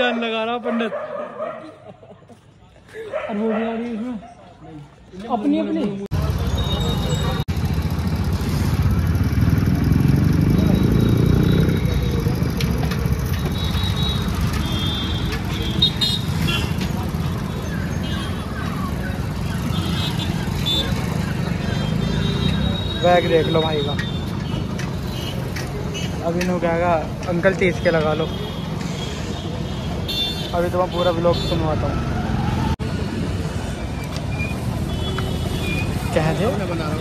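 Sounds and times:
street traffic hum: 0:00.0 - 0:37.0
vehicle engines rumbling: 0:00.0 - 0:37.0.

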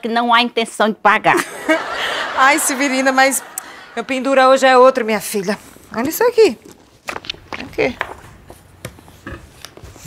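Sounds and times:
soft taps and rustles of objects: 0:05.9 - 0:10.0.

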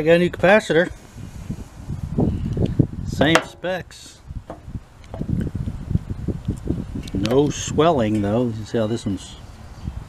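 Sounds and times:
microphone thumps and rumble: 0:01.4 - 0:07.3.

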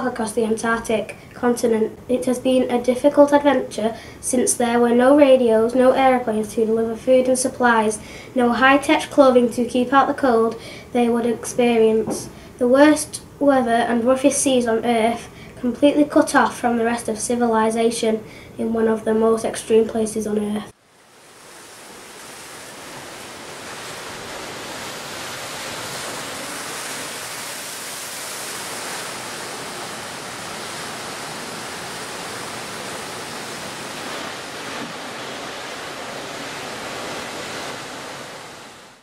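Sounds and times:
rushing sea and wind: 0:20.7 - 0:39.0.

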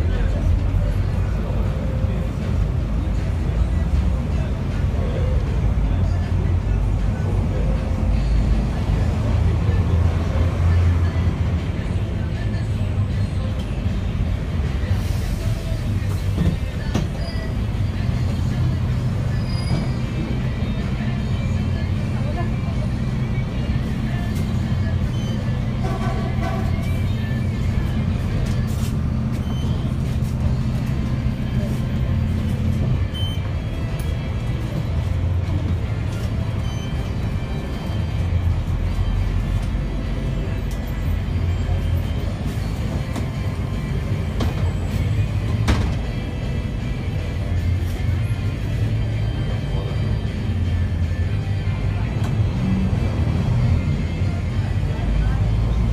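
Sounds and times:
bus engine and road noise: 0:00.0 - 0:55.9.

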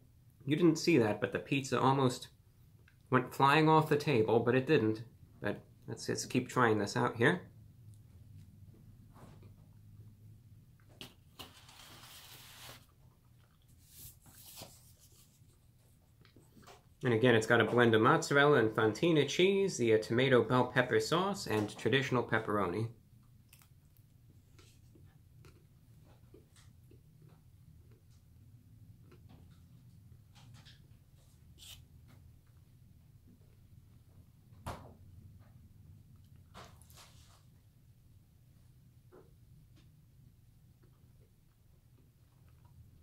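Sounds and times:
chewing crisp pizza: 0:23.3 - 0:29.6.

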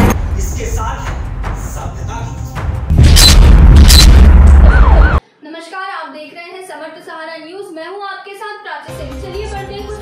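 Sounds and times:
sharp crashing hits: 0:02.9 - 0:05.0
deep sustained boom: 0:02.9 - 0:05.2
siren-like wail: 0:03.8 - 0:05.2.

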